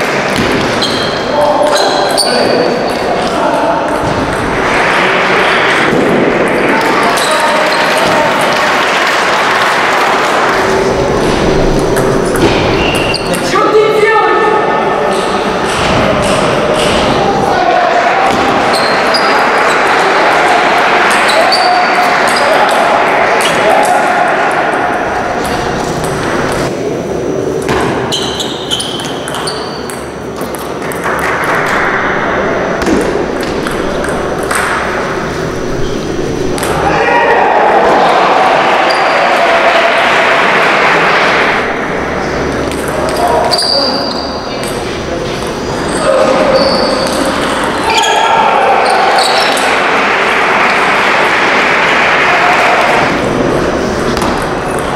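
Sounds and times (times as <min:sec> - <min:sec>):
chatter of many voices: 0:00.0 - 0:54.9.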